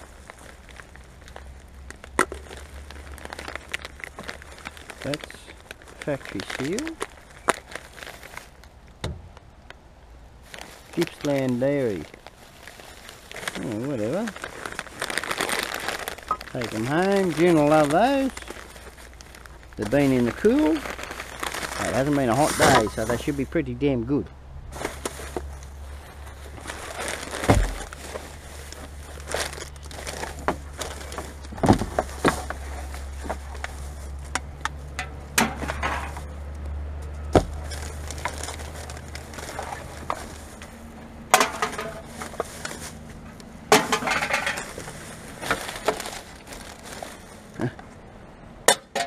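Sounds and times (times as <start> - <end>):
plastic bags rustling: 0.0 - 23.9, 24.7 - 49.0
bottles and cans clinking: 41.3 - 42.2, 43.7 - 44.8, 48.6 - 49.0.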